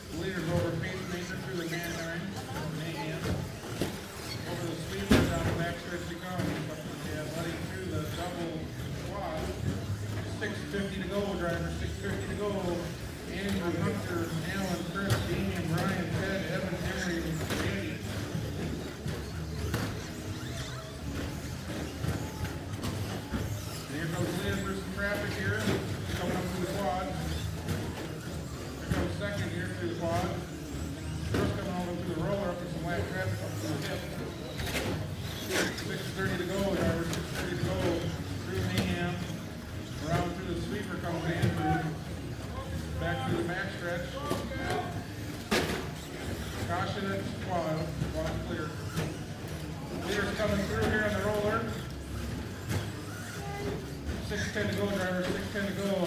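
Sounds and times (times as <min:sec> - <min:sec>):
low hum of toy trucks: 0:00.0 - 0:56.0.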